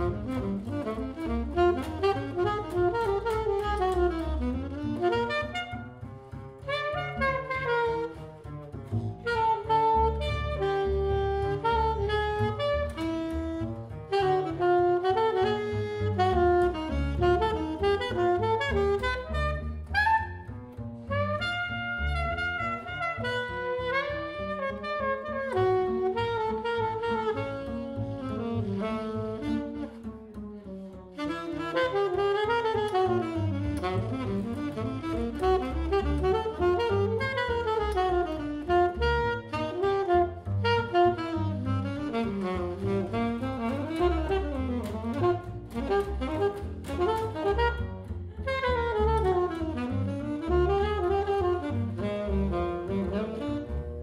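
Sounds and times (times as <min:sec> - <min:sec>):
alto saxophone melody: 0:00.0 - 0:54.0
double bass plucked: 0:00.0 - 0:54.0.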